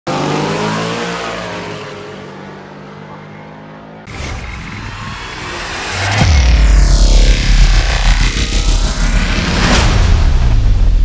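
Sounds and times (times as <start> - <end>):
racing car engine at high revs: 0.0 - 10.4
whooshing: 4.1 - 11.0.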